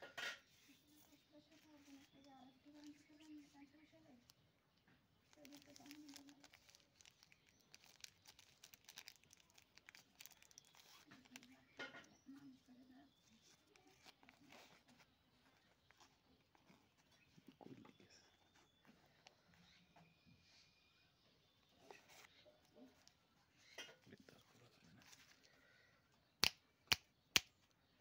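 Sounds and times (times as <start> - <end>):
wrapper and foil crinkling: 0.9 - 4.4, 5.2 - 15.0.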